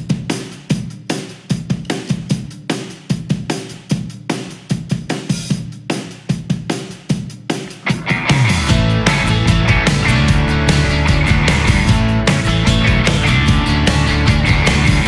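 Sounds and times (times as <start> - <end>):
drum kit steady beat: 0.0 - 15.0
rock band guitar and bass: 7.8 - 15.0.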